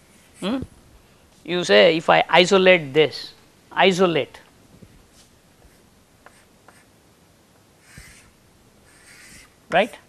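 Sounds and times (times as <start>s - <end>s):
chalk scratching on blackboard: 5.7s - 6.9s, 7.8s - 8.3s, 8.9s - 9.5s.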